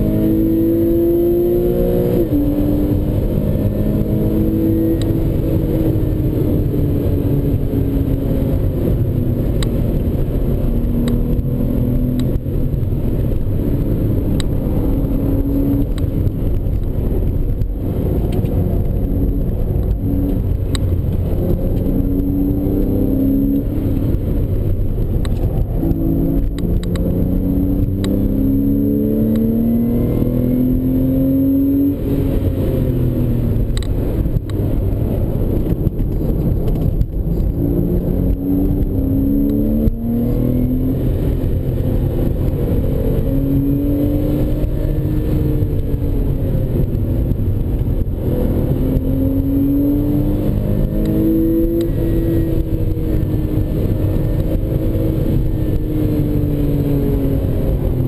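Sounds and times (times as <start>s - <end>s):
car engine accelerating and shifting: 0.0s - 58.0s
road and tyre noise: 0.0s - 58.0s.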